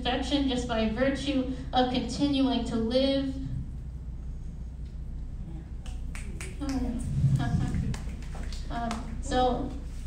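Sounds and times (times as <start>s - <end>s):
low steady hum: 0.0s - 10.0s
audience finger snapping: 5.8s - 9.2s.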